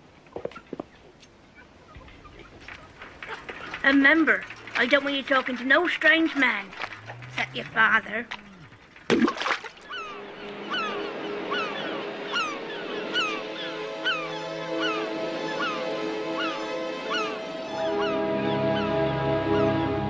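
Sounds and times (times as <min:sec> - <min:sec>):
short falling bird calls: 0:09.8 - 0:19.8
soundtrack music of held notes: 0:10.0 - 0:20.0.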